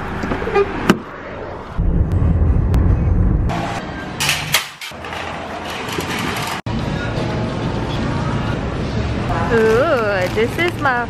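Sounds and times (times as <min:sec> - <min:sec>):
car engine rumble: 0:00.0 - 0:09.4.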